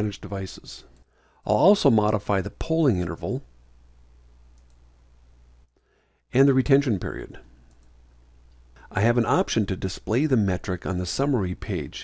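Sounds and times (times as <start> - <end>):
low electrical hum: 0.0 - 12.0
computer mouse clicks: 4.5 - 4.9, 7.6 - 8.6.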